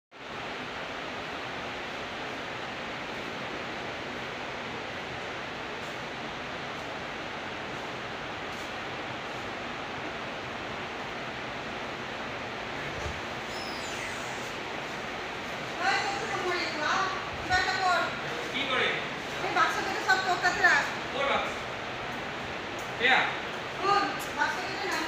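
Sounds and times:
steady hiss: 0.2 - 25.0.

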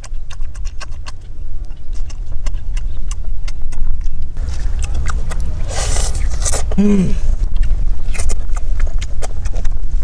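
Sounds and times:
person chewing food: 0.0 - 10.0
steady low rumble: 0.0 - 10.0.

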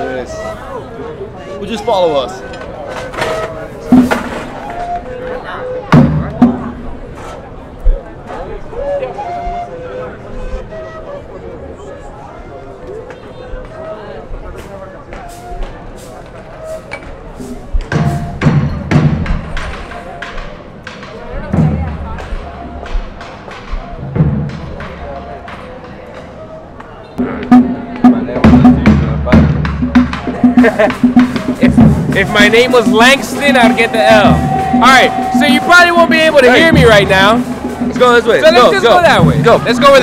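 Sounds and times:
music: 0.0 - 7.0, 7.9 - 40.0
crowd chatter: 0.0 - 40.0
drum strikes: 2.9 - 4.9, 5.9 - 7.0, 17.4 - 26.3, 27.2 - 40.0.

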